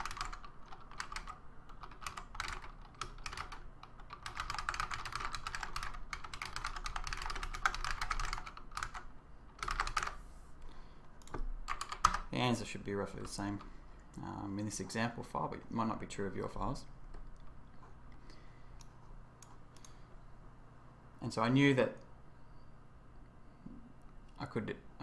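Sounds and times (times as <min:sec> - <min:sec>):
typing on a computer keyboard: 0:00.0 - 0:10.2, 0:11.2 - 0:12.3.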